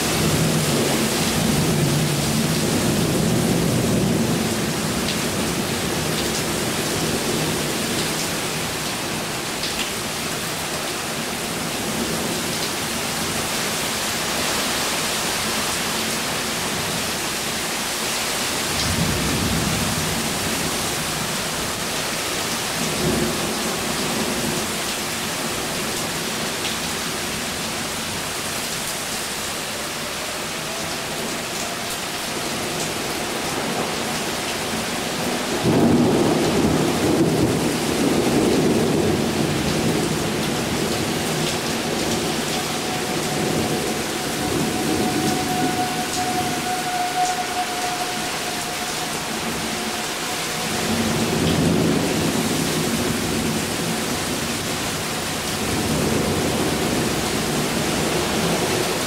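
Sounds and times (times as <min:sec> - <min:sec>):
heavy rain: 0:00.0 - 0:59.0
thunder rumbling: 0:30.0 - 0:59.0.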